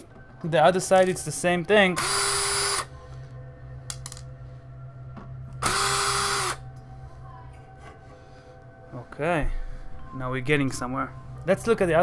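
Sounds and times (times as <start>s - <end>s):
cordless drill running: 2.0s - 2.9s, 5.6s - 6.6s.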